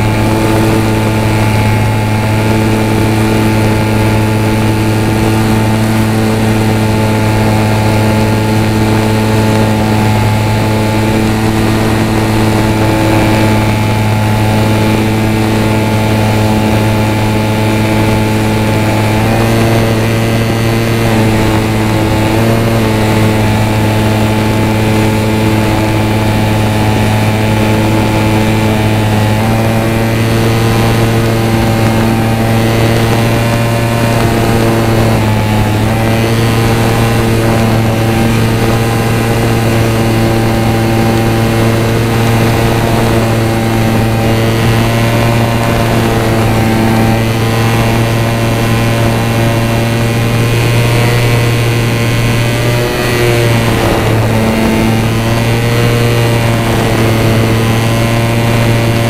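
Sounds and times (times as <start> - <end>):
model plane motor humming: 0.0 - 59.0.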